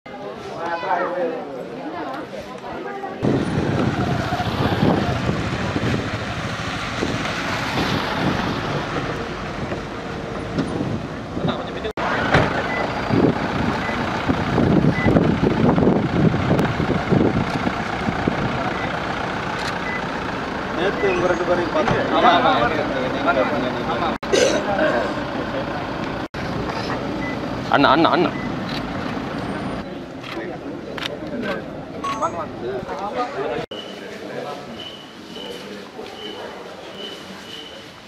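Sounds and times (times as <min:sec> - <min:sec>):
car engines running: 0:03.2 - 0:32.9
people talking: 0:20.8 - 0:26.0, 0:29.8 - 0:38.0.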